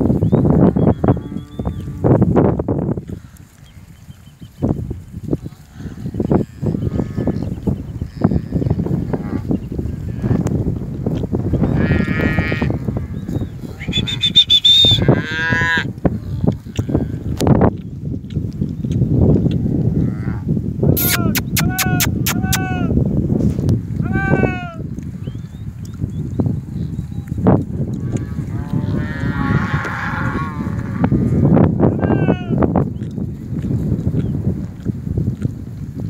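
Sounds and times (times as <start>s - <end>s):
low rumble of herd moving: 0.0s - 21.0s, 22.4s - 36.0s
cattle mooing and bawling: 0.6s - 2.2s, 5.4s - 10.5s, 11.6s - 17.4s, 28.0s - 32.4s.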